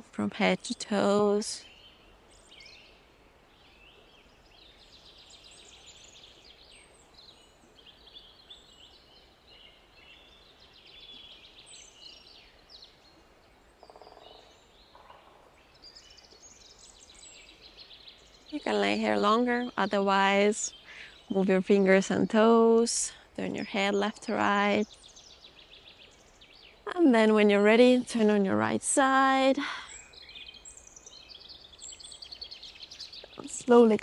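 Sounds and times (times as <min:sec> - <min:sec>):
small birds chirping and trilling: 0:00.0 - 0:34.0.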